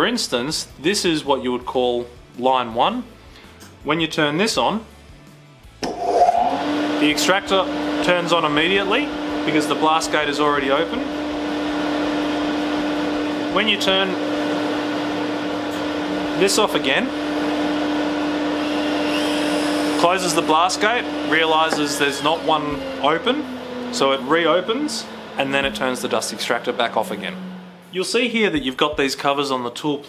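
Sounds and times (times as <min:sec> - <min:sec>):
dust extractor motor hum: 0:05.8 - 0:29.3.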